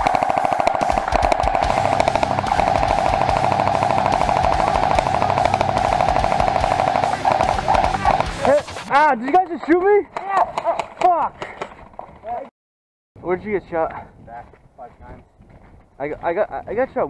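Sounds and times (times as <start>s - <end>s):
airsoft machine gun firing bursts: 0.0s - 8.9s
gearbox whir: 0.0s - 8.9s.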